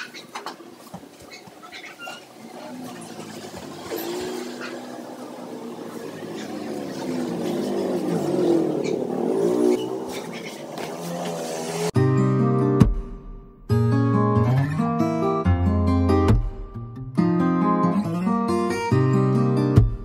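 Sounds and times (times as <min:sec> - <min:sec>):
vehicle engine passing: 0:02.3 - 0:12.0.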